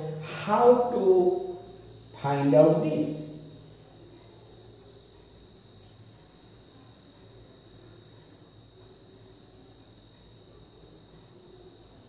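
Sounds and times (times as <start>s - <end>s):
faint high-pitched whine: 0.0s - 12.0s
faint low hum: 0.0s - 12.0s.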